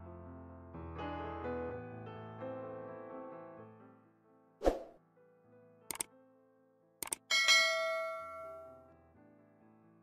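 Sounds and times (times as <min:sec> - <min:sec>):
quick double click: 0:07.0 - 0:07.3
bright bell ding: 0:07.3 - 0:08.9.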